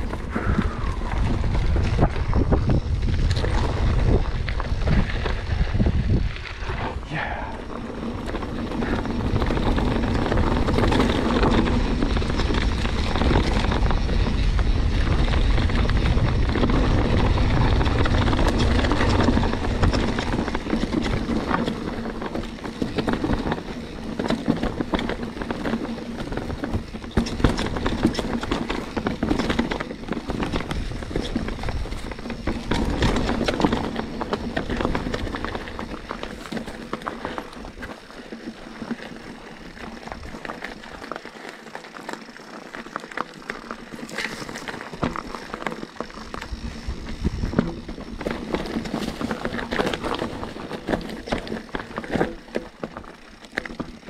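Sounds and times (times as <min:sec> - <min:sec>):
wind rumble on microphone: 0:00.0 - 0:37.9, 0:44.1 - 0:52.5
bike frame and chain rattling: 0:00.0 - 0:54.0
tyres crunching over stones: 0:00.0 - 0:54.0.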